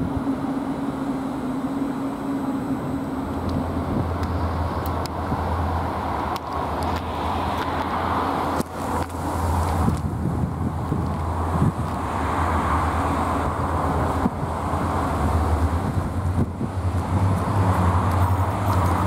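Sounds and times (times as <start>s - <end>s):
electric locomotive humming: 0.0s - 19.0s
wheels clicking over rail joints: 3.3s - 12.1s, 13.6s - 19.0s.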